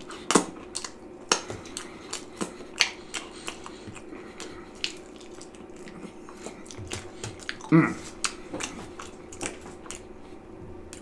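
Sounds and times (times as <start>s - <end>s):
man chewing with mouth smacks: 0.0s - 11.0s.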